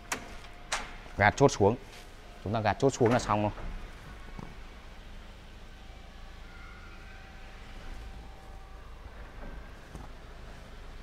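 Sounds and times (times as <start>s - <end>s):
door panels rolling along track: 0.0s - 11.0s.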